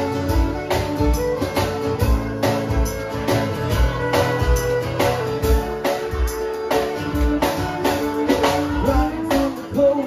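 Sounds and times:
fiddle: 0:00.0 - 0:10.0
strummed acoustic guitar: 0:00.0 - 0:10.0.

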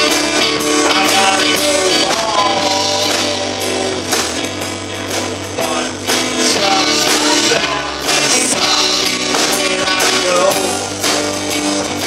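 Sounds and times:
electric bass guitar: 0:00.0 - 0:12.0
man singing: 0:00.0 - 0:12.0
strummed acoustic guitar: 0:00.0 - 0:12.0.

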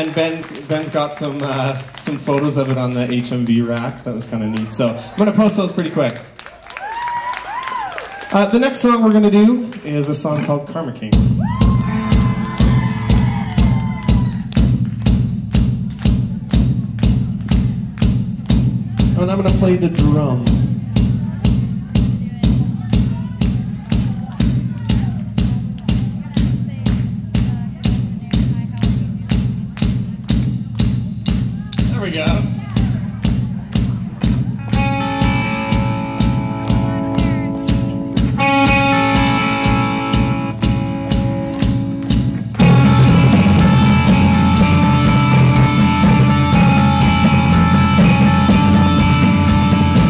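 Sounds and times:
full band playing: 0:00.0 - 0:50.0
drum beaten with sticks: 0:11.0 - 0:50.0
sustained keyboard chords: 0:32.0 - 0:50.0
vocal call: 0:34.7 - 0:50.0.

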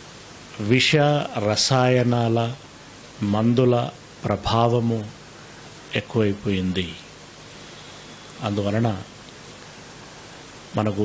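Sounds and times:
background hiss: 0:00.0 - 0:11.0
man speaking: 0:00.6 - 0:02.6, 0:03.2 - 0:05.2, 0:05.9 - 0:07.1, 0:08.4 - 0:09.1, 0:10.7 - 0:11.0.

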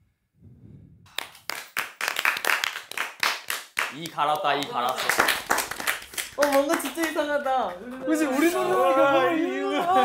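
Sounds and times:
people clapping: 0:01.1 - 0:10.0.

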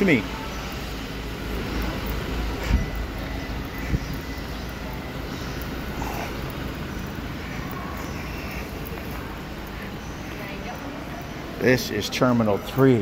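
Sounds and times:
low rumble of background noise: 0:00.0 - 0:13.0.

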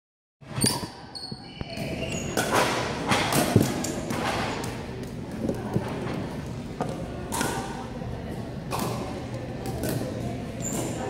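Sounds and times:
ball knocks echoing in hall: 0:00.6 - 0:07.8.

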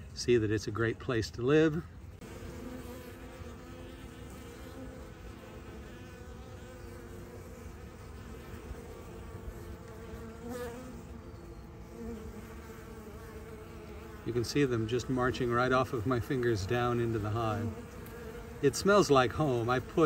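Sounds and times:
bees buzzing: 0:00.0 - 0:20.0.

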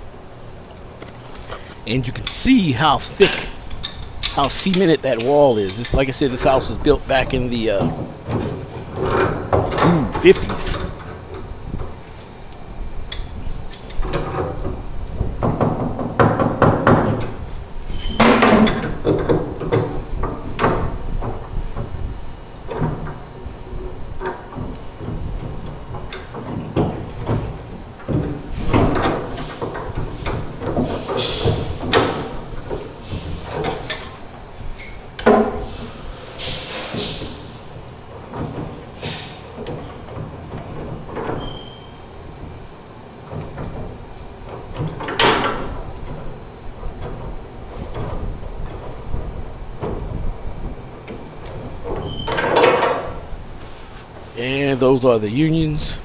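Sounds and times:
wrench clanking on metal pipes: 0:03.2 - 0:06.8.

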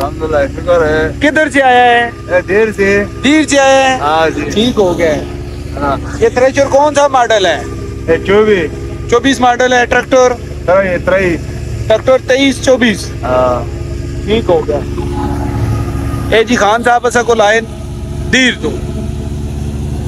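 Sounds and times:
men talking: 0:00.0 - 0:19.1
tractor engine drone: 0:00.0 - 0:20.0.

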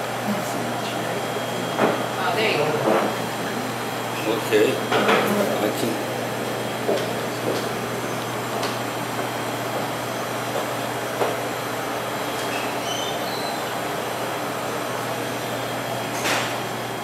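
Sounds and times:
ventilation rushing and humming: 0:00.0 - 0:17.0.

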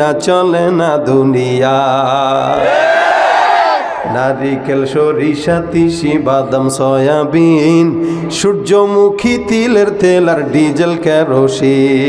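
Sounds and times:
man singing unaccompanied: 0:00.0 - 0:02.6, 0:04.0 - 0:12.0.

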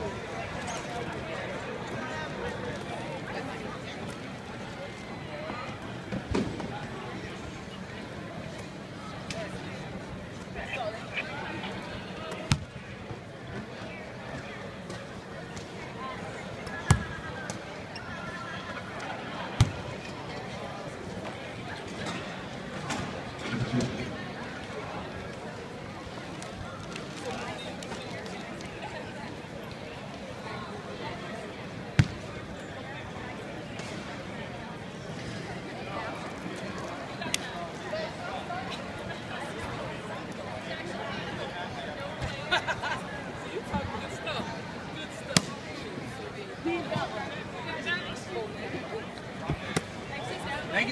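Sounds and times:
low background chatter: 0:00.0 - 0:50.9.

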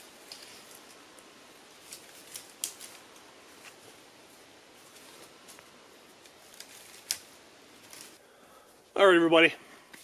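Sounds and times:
dry sticks crackling and rustling: 0:00.0 - 0:08.2.

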